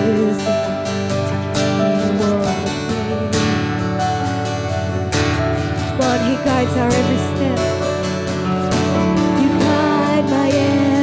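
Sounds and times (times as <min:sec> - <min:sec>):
acoustic guitar strumming: 0:00.0 - 0:11.0
held keyboard chords: 0:00.0 - 0:11.0.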